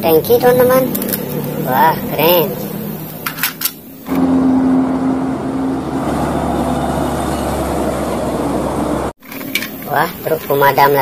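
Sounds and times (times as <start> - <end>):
truck diesel engine: 0.0 - 9.2.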